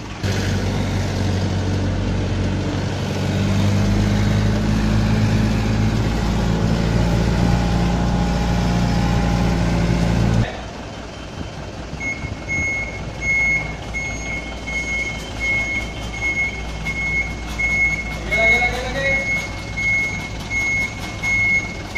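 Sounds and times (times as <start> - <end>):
truck engine running: 0.0 - 21.9
reversing alarm beeping: 10.9 - 21.9.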